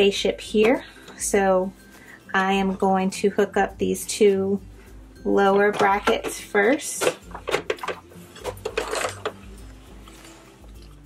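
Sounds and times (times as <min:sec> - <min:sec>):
faint background music: 0:00.0 - 0:11.0
plastic hoop clicks and knocks: 0:07.0 - 0:09.4.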